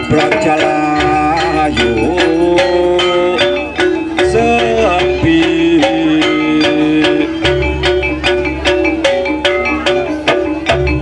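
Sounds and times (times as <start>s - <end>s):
sliding wavering melody: 0.0s - 11.0s.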